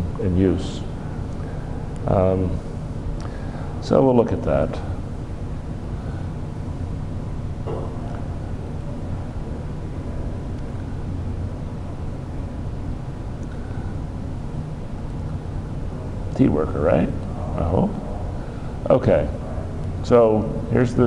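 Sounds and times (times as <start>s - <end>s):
room hum and hiss: 0.0s - 21.0s.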